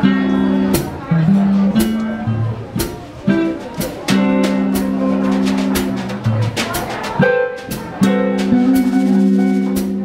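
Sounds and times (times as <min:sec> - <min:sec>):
jazz combo playing: 0:00.0 - 0:10.0
sharp drum or cymbal hits: 0:03.7 - 0:10.0.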